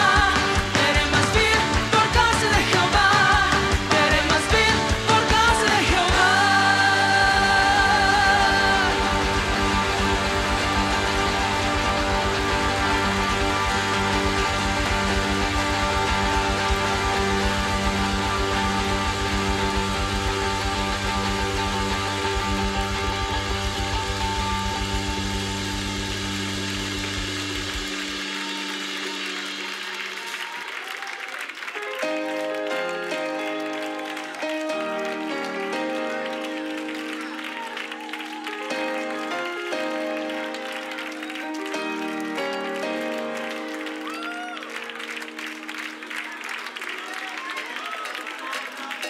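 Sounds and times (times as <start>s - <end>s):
worship band sustained chords: 2.9s - 30.2s.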